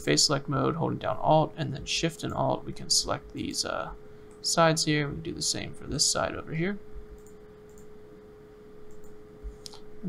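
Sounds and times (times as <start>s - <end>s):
faint steady hum: 0.0s - 10.0s
low room noise: 0.0s - 10.0s.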